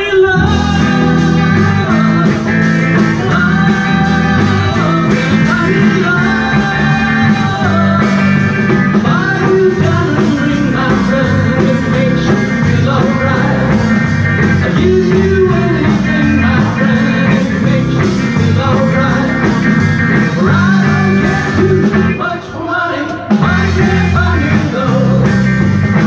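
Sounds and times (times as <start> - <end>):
live rock band playing: 0.0 - 26.0.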